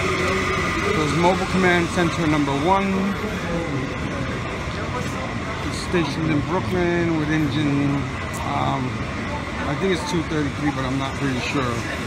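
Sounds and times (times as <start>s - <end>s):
street noise: 0.0s - 12.0s
vehicle engine humming: 0.0s - 12.0s.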